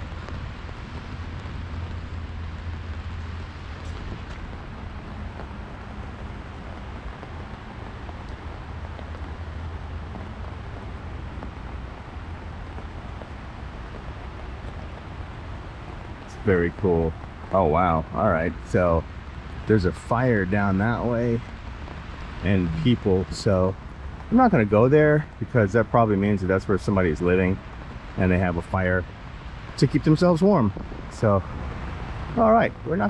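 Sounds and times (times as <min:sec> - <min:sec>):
low traffic rumble: 0:00.0 - 0:33.0
river rushing through channel: 0:29.8 - 0:33.0.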